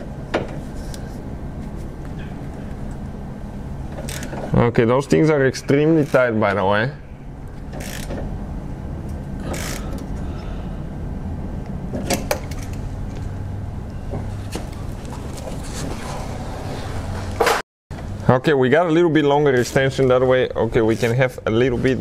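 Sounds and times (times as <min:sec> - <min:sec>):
workshop hum: 0:00.0 - 0:22.0.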